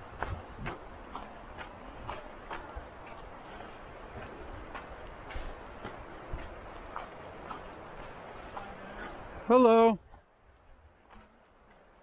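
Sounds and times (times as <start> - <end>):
footsteps on dirt trail: 0.0 - 12.0
wind rumble on microphone: 0.0 - 12.0.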